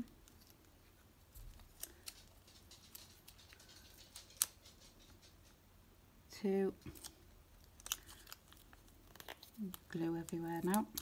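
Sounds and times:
faint clicks and ticks: 1.4s - 5.6s.

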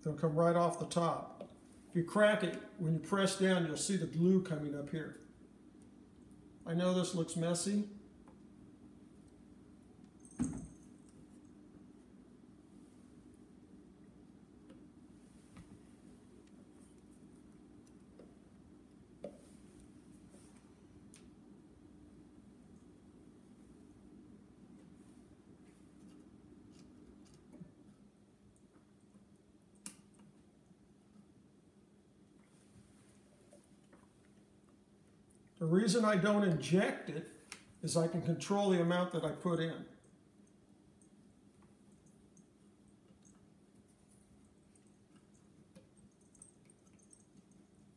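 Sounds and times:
low steady hum: 0.0s - 47.9s.

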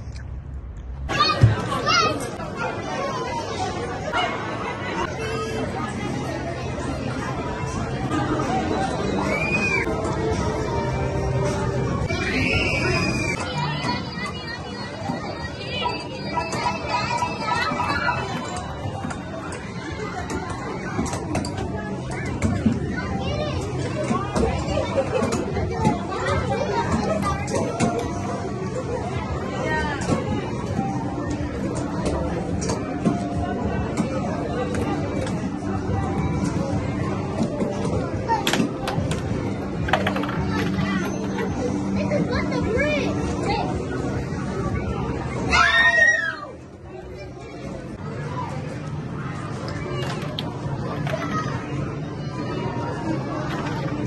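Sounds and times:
arcade game room din: 0.0s - 54.0s
crowd chatter: 0.0s - 54.0s
children shouting and squealing: 1.1s - 6.6s, 7.6s - 10.7s, 12.0s - 31.0s, 44.6s - 48.7s, 49.4s - 53.4s.

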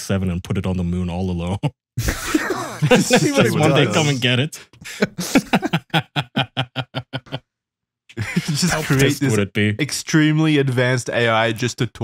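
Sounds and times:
man laughing: 2.0s - 4.2s, 4.9s - 7.4s, 8.1s - 9.4s.

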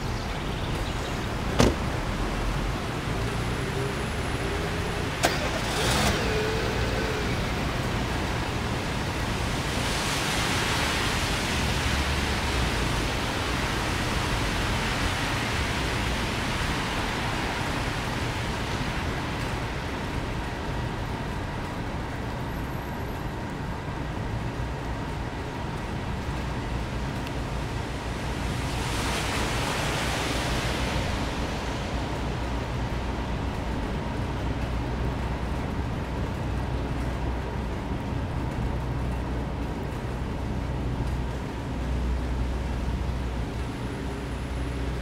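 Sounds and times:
low engine rumble: 0.0s - 45.0s
tyre and road noise: 0.0s - 45.0s.

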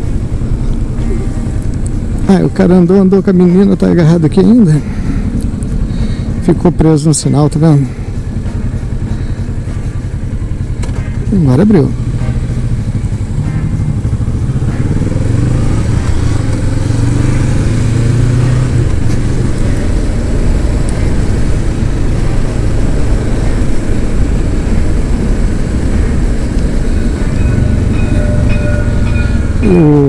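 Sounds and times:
motorcycle engine accelerating: 0.0s - 30.0s
wind rush: 14.0s - 29.7s.

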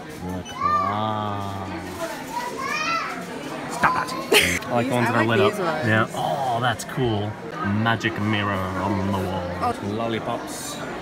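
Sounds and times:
busy shop background: 0.0s - 11.0s.

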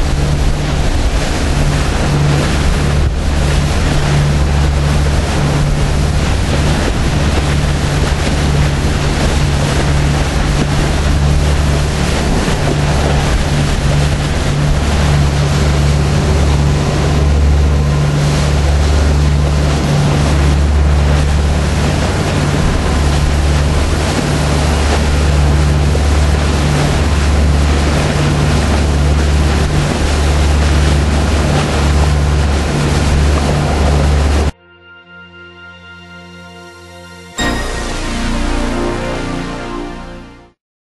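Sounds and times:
churning wake hiss: 0.0s - 34.5s
boat engines droning: 0.0s - 40.4s.

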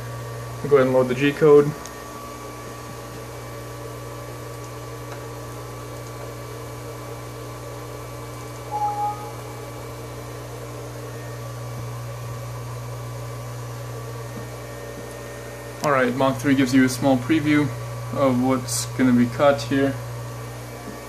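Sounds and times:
steady electrical hum: 0.0s - 21.0s
short double beep: 8.7s - 9.6s.

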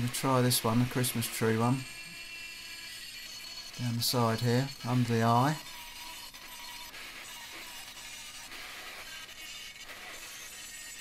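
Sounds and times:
rotary grinder grinding metal: 0.0s - 11.0s.

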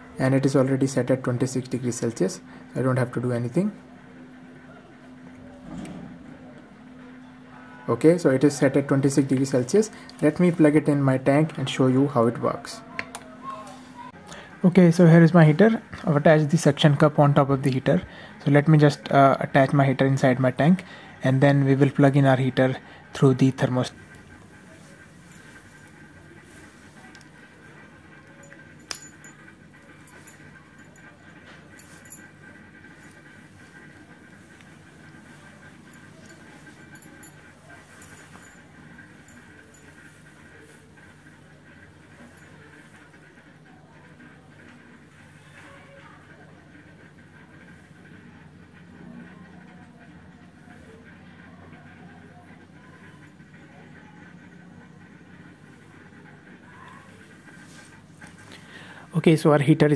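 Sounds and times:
aquarium air pump hum: 0.0s - 59.9s.

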